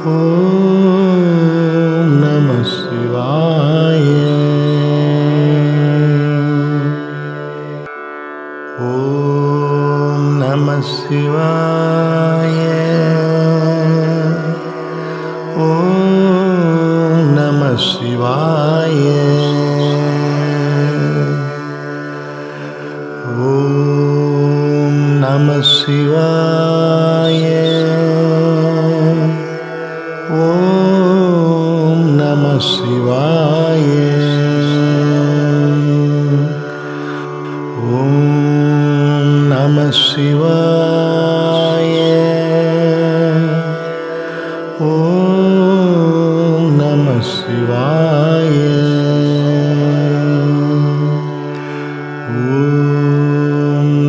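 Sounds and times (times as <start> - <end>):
sung mantra chant: 0.0 - 7.9, 8.7 - 54.0.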